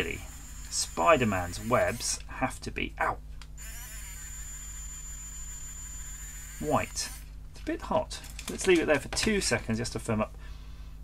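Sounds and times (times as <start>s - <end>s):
small motor running: 0.0s - 2.2s, 3.6s - 7.3s
thin high whine: 3.6s - 7.3s.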